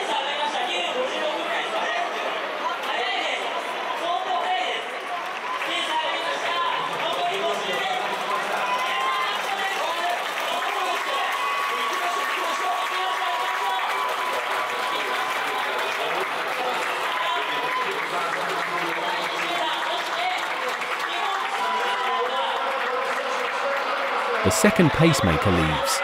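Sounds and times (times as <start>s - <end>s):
crowd noise: 0.0s - 10.6s, 13.4s - 26.0s
crowd clapping: 4.8s - 26.0s
announcer's voice over loudspeaker: 24.4s - 26.0s.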